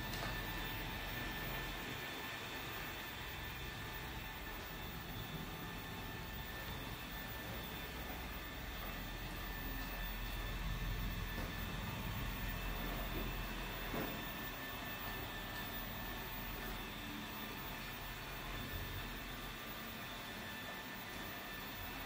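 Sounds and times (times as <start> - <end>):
robot vacuum whirring: 0.0 - 22.0.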